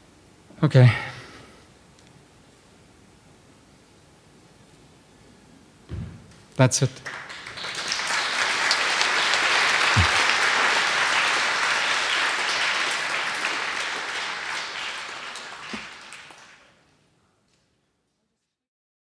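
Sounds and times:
audience applauding: 0:07.0 - 0:16.8.

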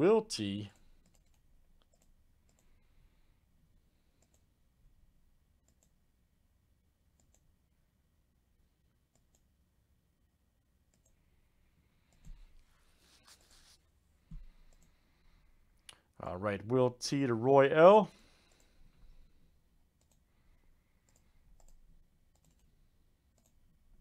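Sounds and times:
computer mouse clicks: 0:00.8 - 0:02.8, 0:04.1 - 0:04.5, 0:05.6 - 0:06.0, 0:07.1 - 0:07.5, 0:09.1 - 0:09.5, 0:10.9 - 0:11.2, 0:12.0 - 0:12.6, 0:14.5 - 0:15.0, 0:18.4 - 0:18.9, 0:20.0 - 0:20.3, 0:21.0 - 0:23.6.

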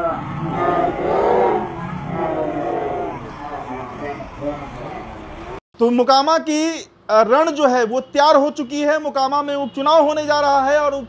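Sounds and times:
harsh voices shouting: 0:00.0 - 0:05.0.

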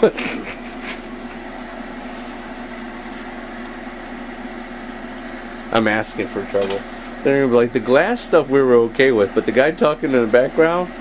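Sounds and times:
low steady hum: 0:00.0 - 0:11.0
torch hissing: 0:00.0 - 0:11.0.

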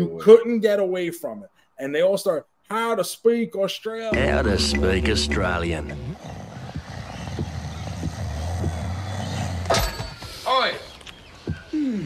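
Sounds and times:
steady low hum: 0:04.1 - 0:06.2.

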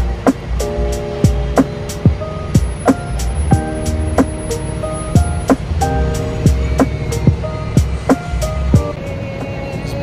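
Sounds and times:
music with drums and deep bass: 0:00.0 - 0:10.0.

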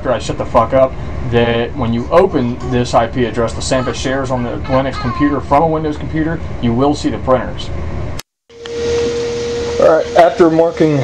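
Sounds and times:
steady whirring hum: 0:00.0 - 0:11.0
steady tone: 0:08.5 - 0:11.0.

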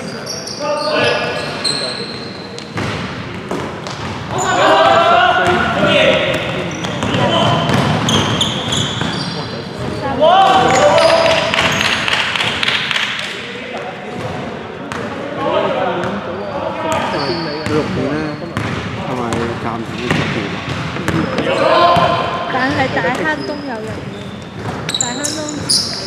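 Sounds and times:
players shouting: 0:04.3 - 0:08.8, 0:10.0 - 0:11.8, 0:21.3 - 0:23.4.

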